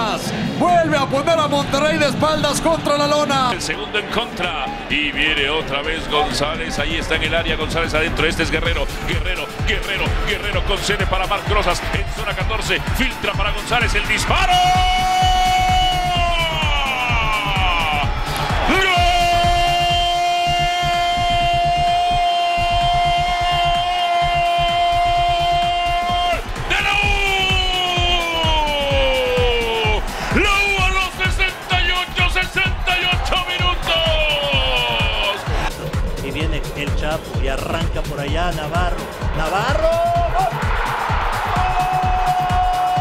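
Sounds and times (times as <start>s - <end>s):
background music with steady beat: 1.7s - 43.0s.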